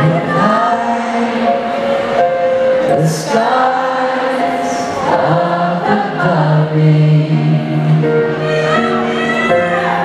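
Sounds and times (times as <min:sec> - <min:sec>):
person singing: 0:00.0 - 0:10.0.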